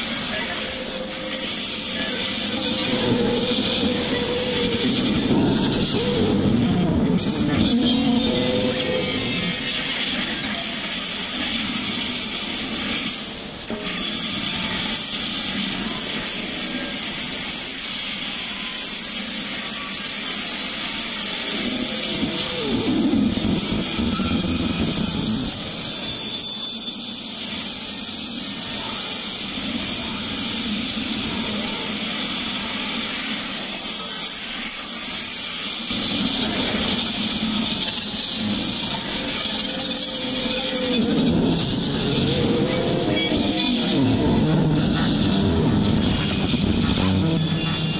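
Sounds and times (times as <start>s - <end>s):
noisy synth texture: 0.0s - 12.0s, 21.2s - 26.4s, 35.9s - 47.9s
low swooping synth tones: 21.7s - 26.1s, 40.2s - 47.9s.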